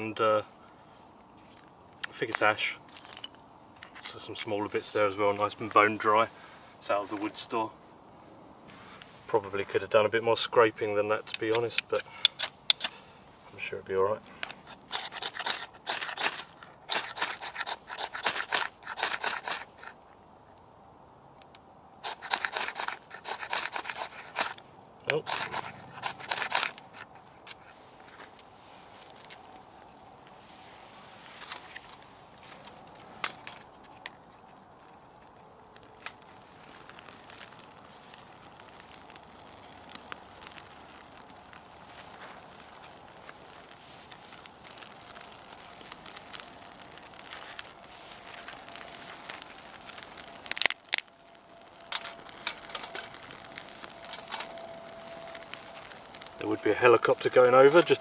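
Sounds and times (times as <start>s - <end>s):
bark and sticks crackling: 0.6s - 7.8s, 8.6s - 58.0s
ferro rod scraping: 14.2s - 20.0s, 36.0s - 58.0s
loud rustle: 35.2s - 58.0s.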